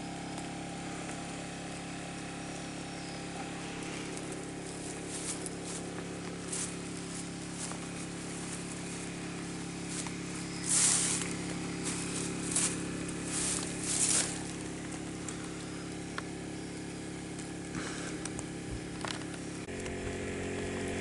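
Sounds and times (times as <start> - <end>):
steady mechanical hum: 0.0 - 21.0.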